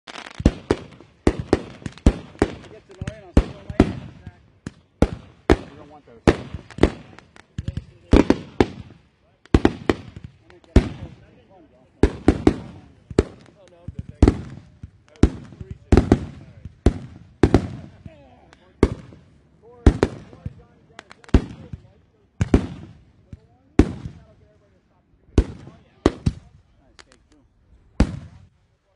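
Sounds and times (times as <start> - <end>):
firework bangs with echo: 0.1 - 11.3, 12.0 - 24.4, 25.3 - 27.1, 28.0 - 28.5.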